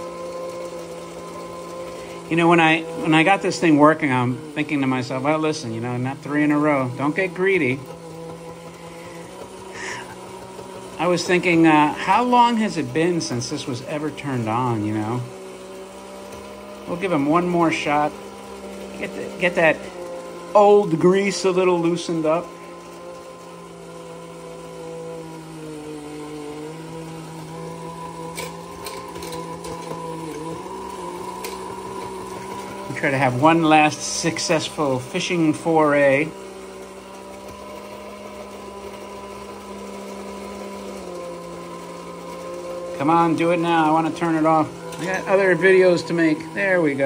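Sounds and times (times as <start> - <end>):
toy electric motor humming: 0.0 - 24.6, 25.2 - 47.0.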